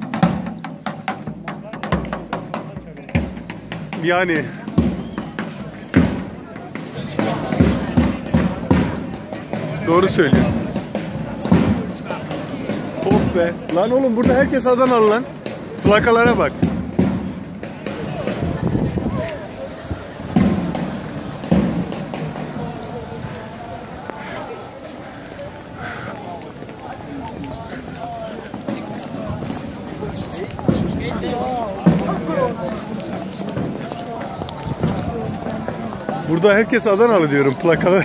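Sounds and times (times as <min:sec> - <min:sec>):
large drum beating: 0:00.0 - 0:19.2, 0:20.2 - 0:23.2, 0:30.5 - 0:36.8
passers-by talking: 0:00.0 - 0:38.0.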